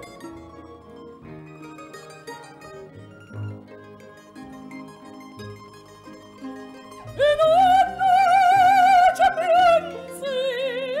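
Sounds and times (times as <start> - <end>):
plucked strings: 0.0 - 11.0.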